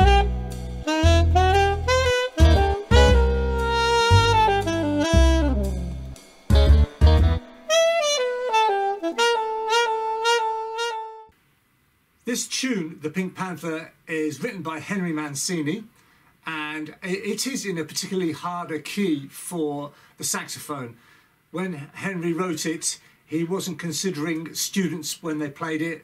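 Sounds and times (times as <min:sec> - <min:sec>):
heavy low bass notes: 0:00.0 - 0:08.3
saxophone jazzy melody: 0:00.0 - 0:11.4.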